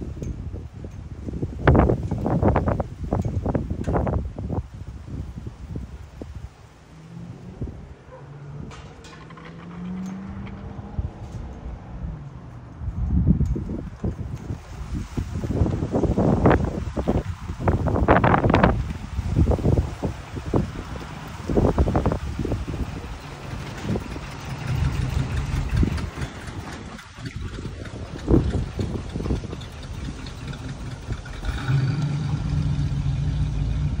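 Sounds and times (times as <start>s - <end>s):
wind buffeting microphone: 0.0s - 34.0s
car engine passing by: 6.6s - 13.2s, 14.4s - 34.0s.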